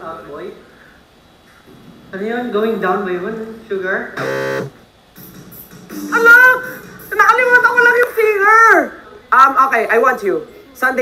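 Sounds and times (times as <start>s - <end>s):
electronic buzzer: 4.2s - 4.8s.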